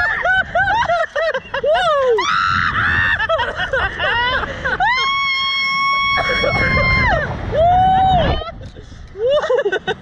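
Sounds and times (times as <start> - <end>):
wind rushing on microphone: 0.0 - 10.0.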